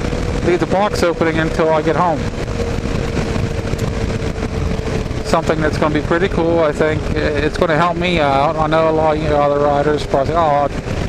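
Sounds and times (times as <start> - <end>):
motorcycle engine cruising: 0.0 - 11.0
wind and road noise: 0.0 - 11.0.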